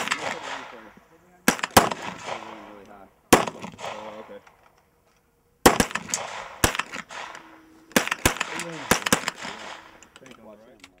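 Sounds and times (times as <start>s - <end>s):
pistol shot echoing: 0.0s - 4.4s, 5.6s - 10.1s.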